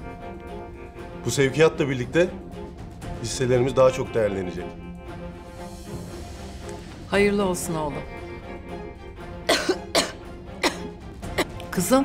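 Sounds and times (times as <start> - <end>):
soft background music: 0.0 - 12.0
woman coughing: 9.4 - 11.6.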